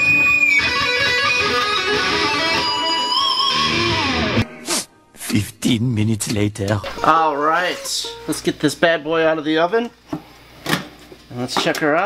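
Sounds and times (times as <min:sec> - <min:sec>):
electric guitar lead line: 0:00.0 - 0:04.5.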